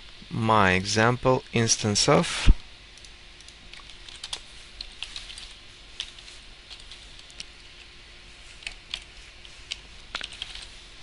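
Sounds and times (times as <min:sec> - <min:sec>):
computer keyboard keystrokes: 0:03.0 - 0:07.5, 0:08.6 - 0:09.1, 0:09.7 - 0:10.7.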